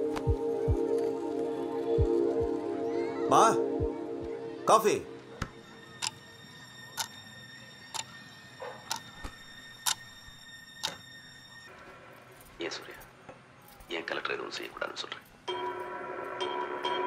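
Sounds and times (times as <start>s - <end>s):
clock ticking: 7.0s - 7.2s, 8.8s - 9.1s, 9.8s - 10.1s.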